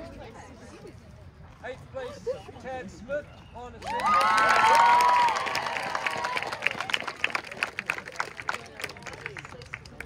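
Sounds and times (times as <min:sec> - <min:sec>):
crowd cheering: 0:03.8 - 0:08.9.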